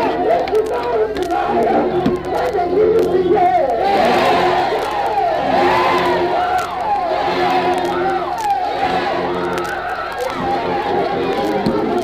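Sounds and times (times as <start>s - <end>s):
congregation shouting in praise: 0.0s - 12.0s.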